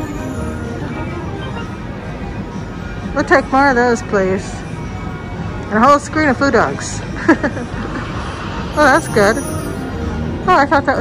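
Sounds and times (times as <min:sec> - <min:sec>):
slot machine chiming tune: 0:00.0 - 0:02.0, 0:08.8 - 0:10.6.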